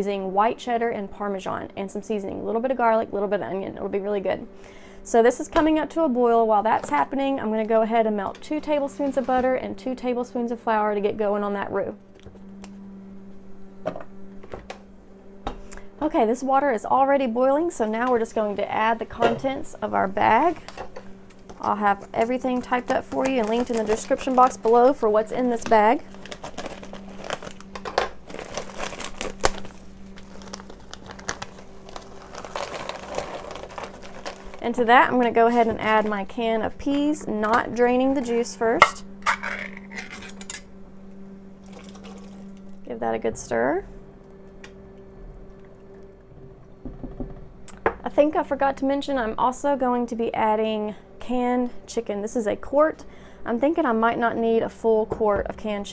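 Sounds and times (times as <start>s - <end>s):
steady low hum: 0.0s - 55.9s
peas and liquid pouring into pot: 26.2s - 34.6s, 41.6s - 42.8s.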